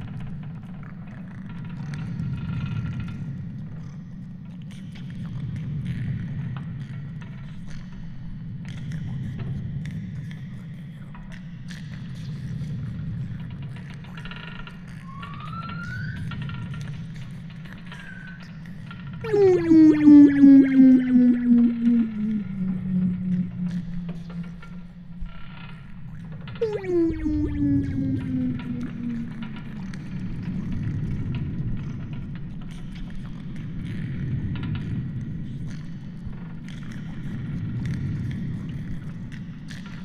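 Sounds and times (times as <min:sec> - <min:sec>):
rising whistling tone: 0:19.3 - 0:24.8, 0:26.6 - 0:29.6.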